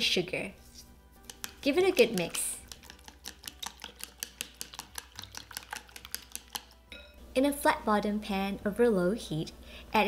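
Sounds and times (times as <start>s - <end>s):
chopsticks beating egg in bowl: 1.2s - 6.9s.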